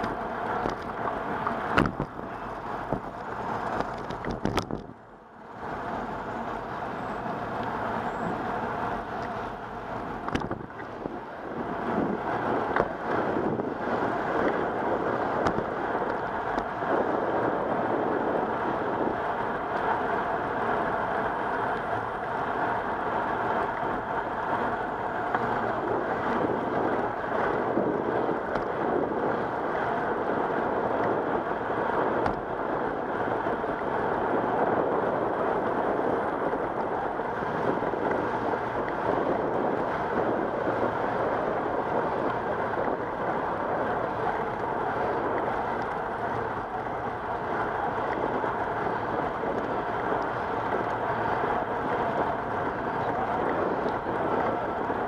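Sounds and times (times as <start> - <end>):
tyres rolling on pavement: 0.0 - 55.0
wind over microphone: 0.0 - 55.0.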